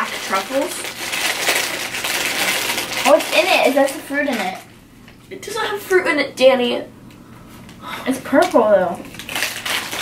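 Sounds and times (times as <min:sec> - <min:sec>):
plastic bag crinkling: 0:00.0 - 0:04.7, 0:08.4 - 0:10.0.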